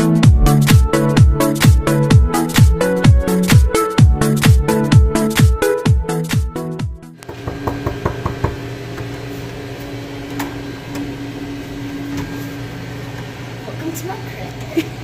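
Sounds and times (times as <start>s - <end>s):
knuckles knocking on door: 7.3s - 8.6s.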